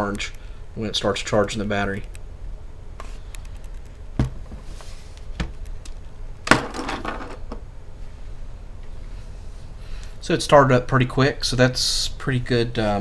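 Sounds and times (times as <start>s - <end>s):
low steady hum: 0.0s - 13.0s
knock with rustle: 4.2s - 4.7s.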